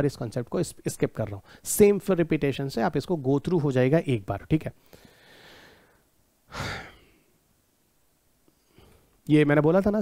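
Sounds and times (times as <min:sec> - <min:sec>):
man sighing: 0:06.5 - 0:07.3.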